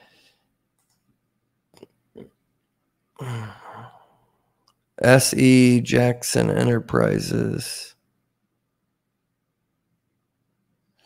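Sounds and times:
man sighing: 3.2 - 4.3.

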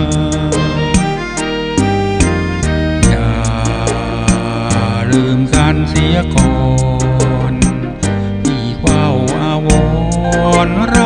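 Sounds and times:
man singing: 0.0 - 1.2, 3.0 - 11.0
instrumental backing with bass and beat: 0.0 - 11.0.

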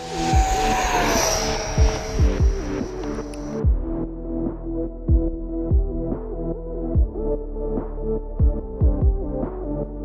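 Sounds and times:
rc jet fan whine passing: 0.0 - 3.7
electronic music with kick drum: 1.8 - 2.8, 3.5 - 9.8.

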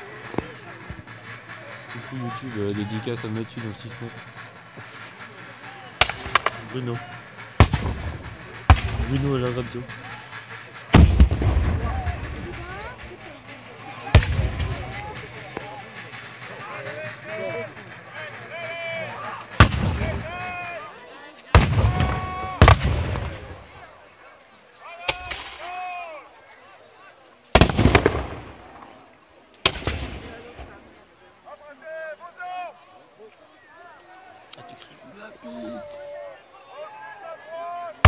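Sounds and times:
low rumbling echo: 3.5 - 18.5
musket volleys firing: 6.0 - 6.6, 27.6 - 28.8, 29.6 - 30.5
gunshots: 6.0 - 13.2, 14.0 - 15.8, 19.5 - 20.6, 21.5 - 23.8, 25.0 - 25.7, 27.6 - 29.0, 29.6 - 30.8.

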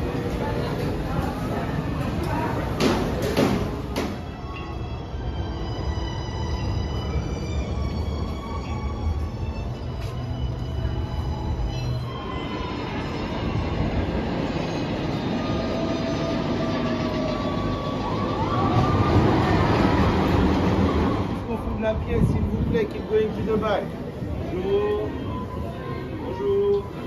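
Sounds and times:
train rumbling on rails: 0.0 - 27.0
squealing train wheels: 3.7 - 21.6
eerie music: 4.2 - 21.5.

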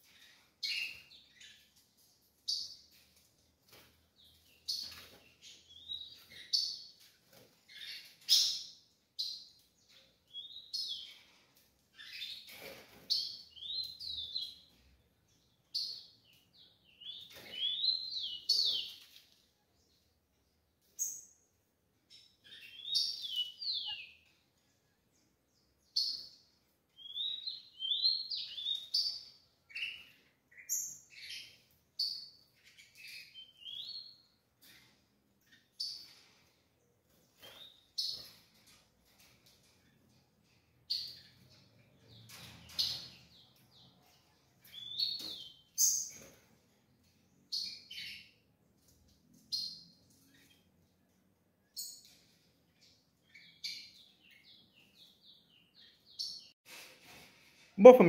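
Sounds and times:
sparrows chirping: 0.0 - 56.6.

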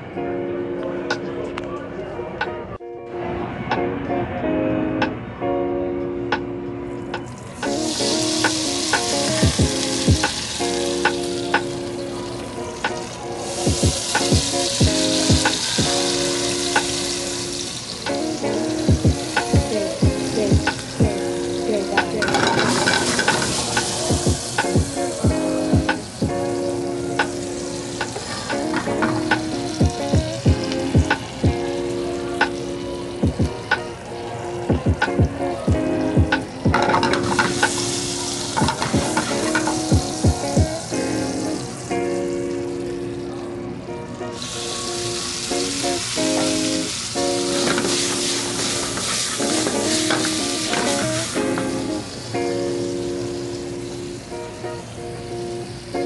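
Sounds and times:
vegetables sizzling in a pan: 7.6 - 34.7, 35.8 - 43.1, 44.4 - 56.0.

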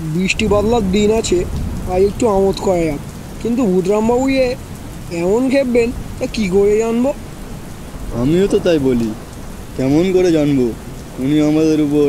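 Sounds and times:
steady rain: 0.0 - 12.0.

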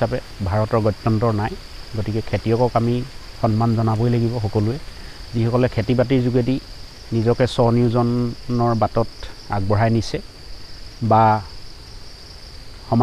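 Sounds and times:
man speaking: 0.0 - 10.3, 11.0 - 11.5
high-pitched insect drone: 0.0 - 13.0.

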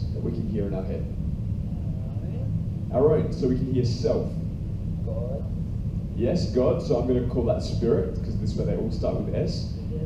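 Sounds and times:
man speaking into microphone: 0.0 - 1.2, 2.9 - 4.4, 6.2 - 10.0
steady low rumble: 0.0 - 10.0.

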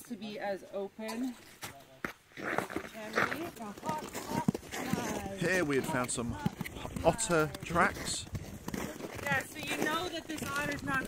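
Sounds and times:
people talking indistinctly: 2.8 - 11.0.

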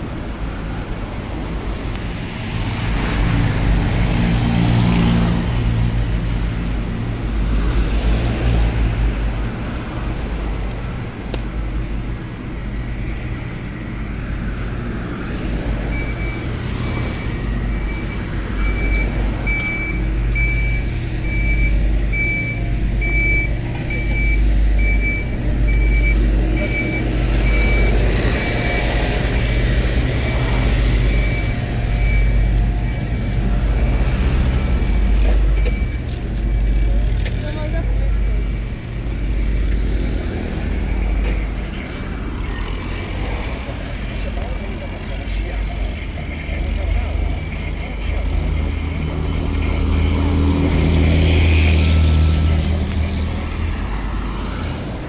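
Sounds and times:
low rumble of road traffic: 0.0 - 55.0
reversing alarm beeping: 15.8 - 34.0, 34.7 - 37.0.

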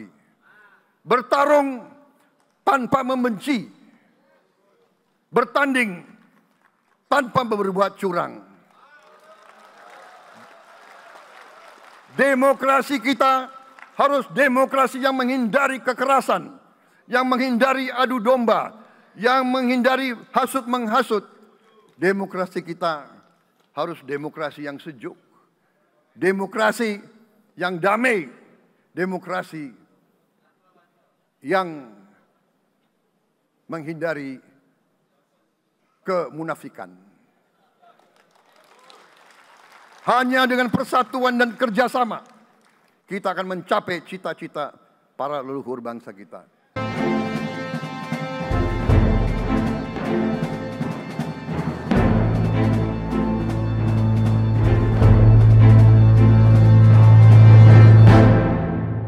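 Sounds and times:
faint audience applause: 8.6 - 14.4, 37.8 - 40.6, 42.0 - 43.1.

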